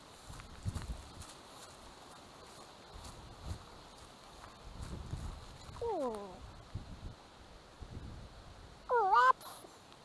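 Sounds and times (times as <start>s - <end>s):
footfalls on dirt track: 0.0s - 5.8s.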